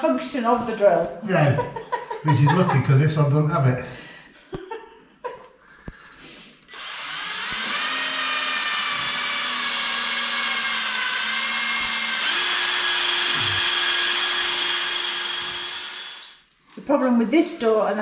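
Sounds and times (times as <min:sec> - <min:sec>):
cordless drill motor whine: 0:06.7 - 0:16.4.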